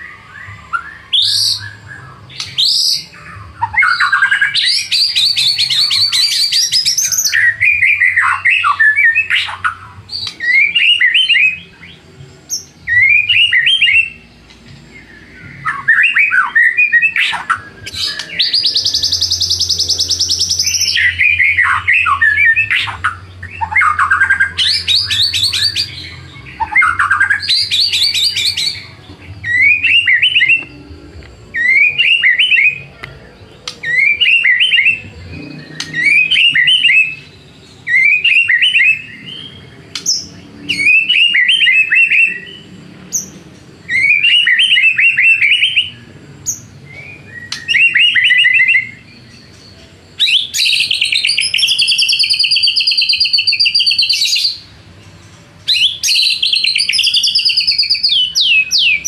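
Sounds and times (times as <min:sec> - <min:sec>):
songbird singing trills: 0:00.0 - 0:59.0.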